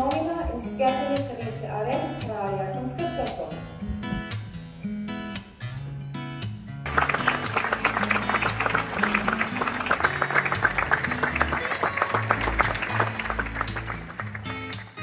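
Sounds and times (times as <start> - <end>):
background music with guitar: 0.0 - 15.0
audience applauding: 6.9 - 15.0.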